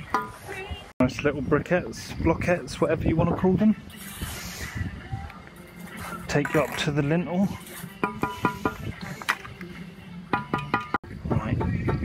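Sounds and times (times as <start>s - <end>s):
mortar scraping: 3.9s - 4.8s, 5.7s - 9.6s.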